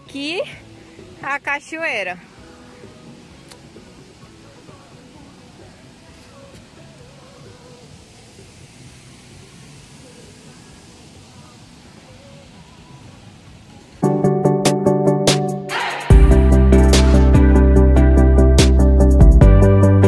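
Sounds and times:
distant waterfall rushing: 0:00.0 - 0:17.7.

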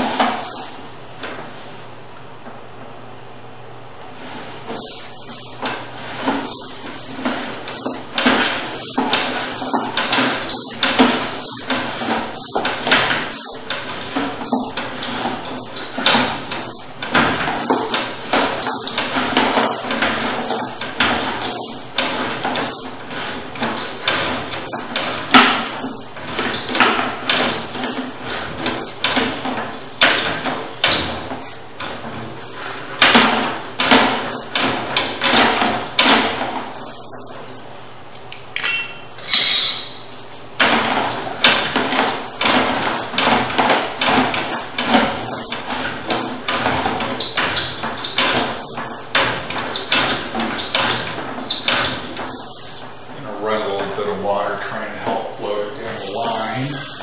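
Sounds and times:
cable knocking and rattling in pipe: 0:05.6 - 0:36.7, 0:40.6 - 0:52.5.

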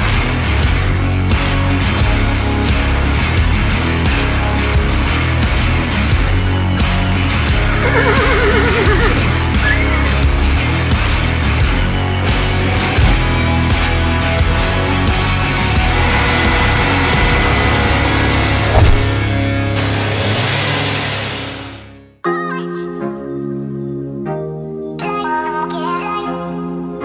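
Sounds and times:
loud rock music: 0:00.0 - 0:22.1
horse whinnying: 0:07.6 - 0:10.3
loud noise burst: 0:15.4 - 0:22.0
low held note: 0:15.8 - 0:19.9.

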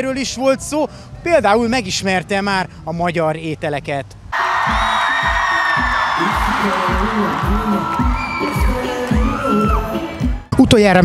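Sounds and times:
kick drum beating: 0:04.7 - 0:10.4
live pop band playing: 0:06.2 - 0:10.5.

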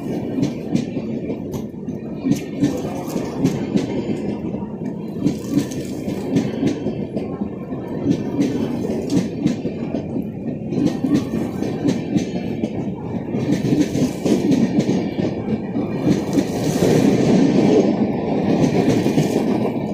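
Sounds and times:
train rumble: 0:00.0 - 0:19.9
train wheels clattering over rail joints: 0:08.0 - 0:19.9.

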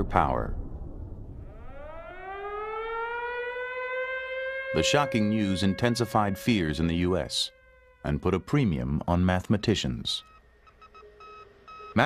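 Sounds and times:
siren winding up into wail: 0:01.4 - 0:08.8, 0:10.2 - 0:12.0.

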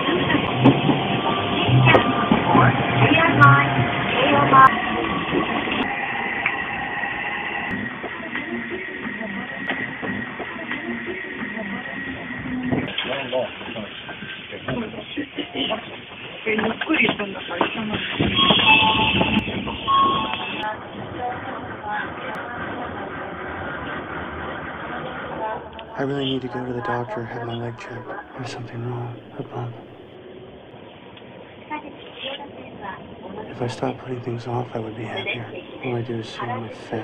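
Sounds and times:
train running at platform: 0:00.0 - 0:12.1, 0:15.7 - 0:30.0.

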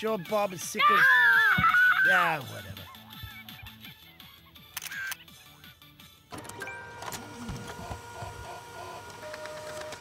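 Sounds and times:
printer printing: 0:06.3 - 0:10.0.

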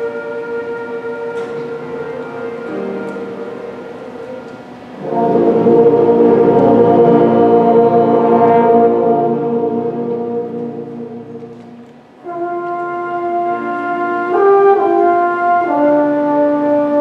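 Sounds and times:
concert band music: 0:00.0 - 0:17.0
sustained brass chord: 0:00.0 - 0:17.0.

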